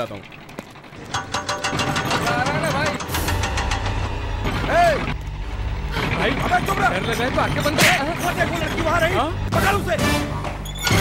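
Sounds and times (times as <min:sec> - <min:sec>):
low engine drone: 0:00.0 - 0:10.6.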